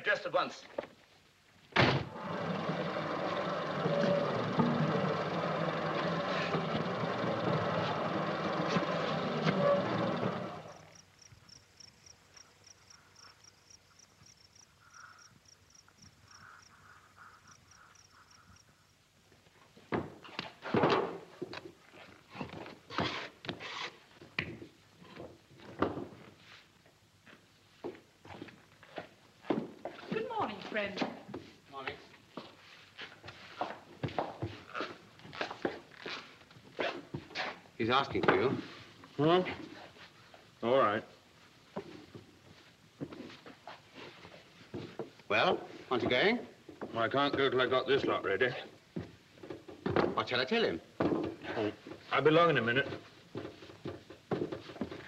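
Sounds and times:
dough mixer running: 2.2 - 10.7
rapid bird chirps: 14.3 - 19.0.

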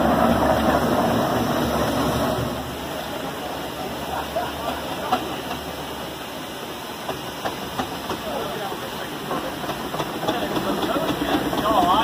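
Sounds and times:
steam hissing: 0.0 - 12.0.

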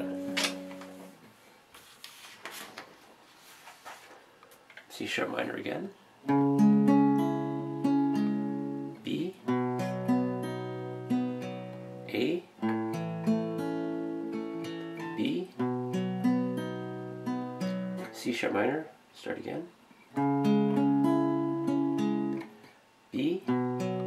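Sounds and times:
acoustic guitar picking chords: 0.0 - 1.3, 6.2 - 18.8, 20.0 - 24.0.

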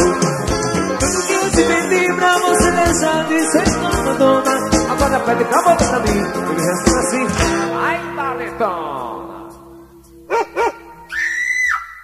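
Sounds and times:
short dog-like barks: 10.3 - 10.9.

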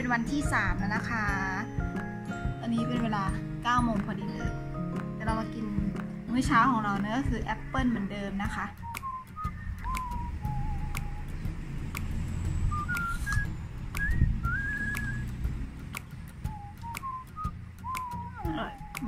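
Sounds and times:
person whistling a tune: 8.8 - 11.4, 12.6 - 15.4, 16.4 - 19.0.

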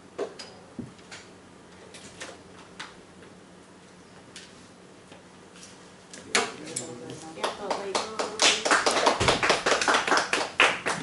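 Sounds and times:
small audience clapping: 7.2 - 11.0.

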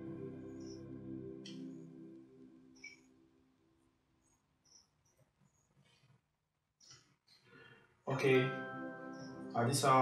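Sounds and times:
quiet background music: 0.0 - 6.0, 8.1 - 10.0.

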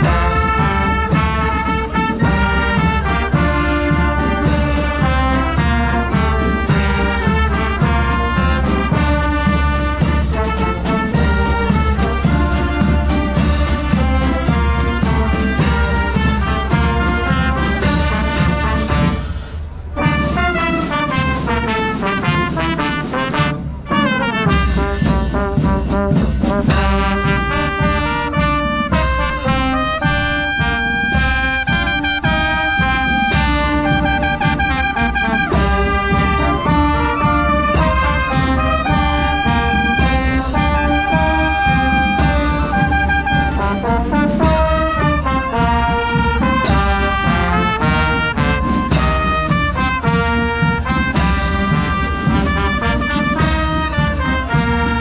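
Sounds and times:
low drum beat: 0.0 - 19.2, 19.9 - 55.0
brass band playing march: 0.0 - 55.0.

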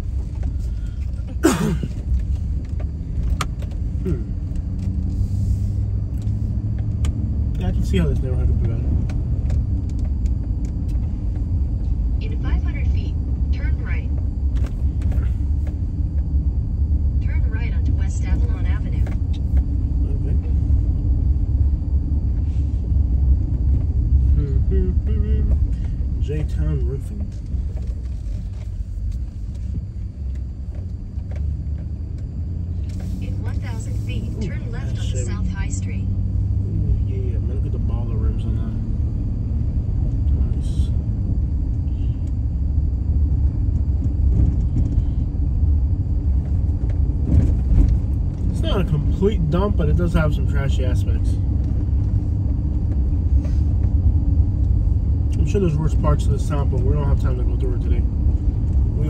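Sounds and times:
engine and tyre rumble: 0.0 - 59.0.

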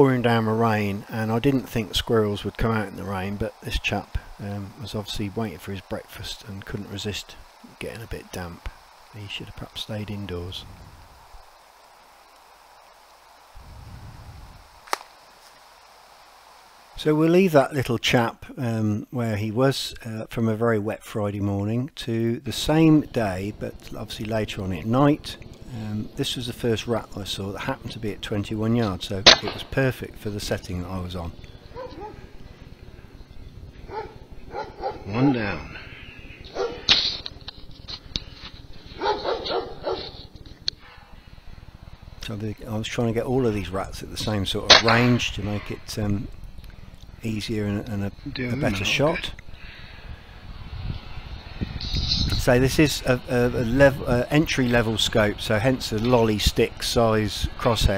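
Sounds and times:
air rifle shot crack: 29.3 - 29.7
sharp click: 29.3 - 29.7
dog barking and whining: 31.7 - 32.2, 33.8 - 35.4, 36.5 - 36.9, 38.9 - 40.3.

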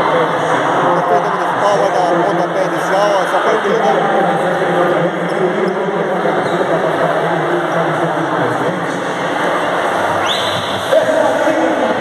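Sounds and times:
crowd babble: 0.0 - 12.0.

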